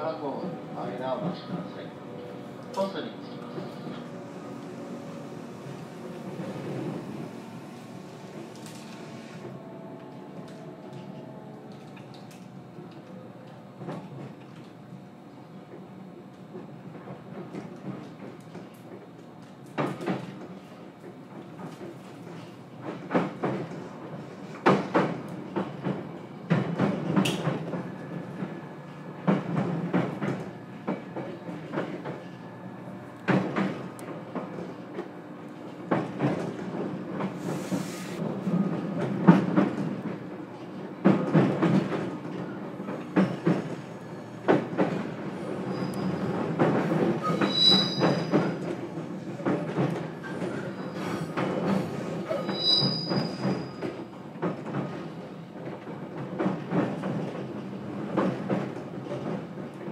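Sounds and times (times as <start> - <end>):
train wheels clacking over joints: 41.0 - 43.8, 44.4 - 59.9
high-pitched wheel squeals: 45.7 - 46.3, 47.2 - 48.6, 52.3 - 53.9.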